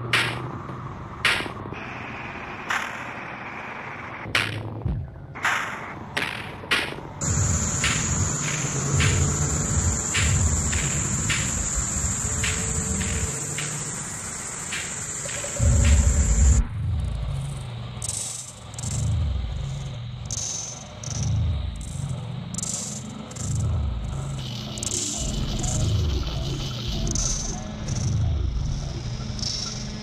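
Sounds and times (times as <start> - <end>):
high steady whine: 0.0 - 30.0
ticking electronic percussion: 0.1 - 0.6, 1.2 - 1.7, 4.2 - 4.8, 5.4 - 30.0
pulsing low bass line: 7.2 - 18.2
heavy low boom: 15.6 - 17.3.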